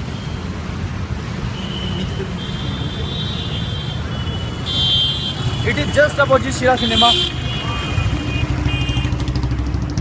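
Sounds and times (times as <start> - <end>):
road traffic noise: 0.0 - 10.0
motorcycle engine running: 7.8 - 10.0.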